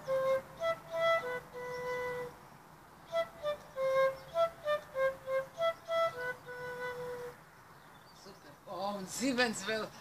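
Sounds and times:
transverse flute melody: 0.0s - 2.4s, 3.0s - 7.4s.

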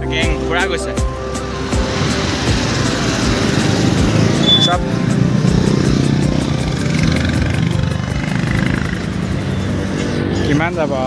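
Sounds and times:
background music with steady tones: 0.0s - 11.0s
traffic of passing cars and motorbikes: 0.1s - 11.0s.

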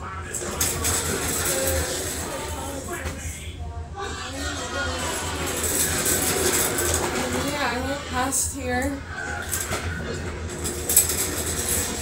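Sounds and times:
casters rolling on wooden floor: 0.3s - 3.3s, 4.3s - 12.0s.

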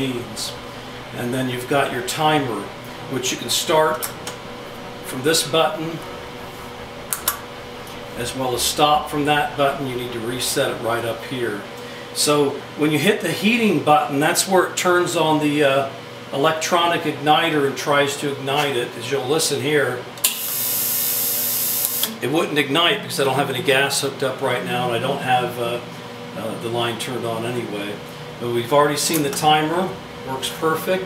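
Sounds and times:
low hum: 0.0s - 12.8s.

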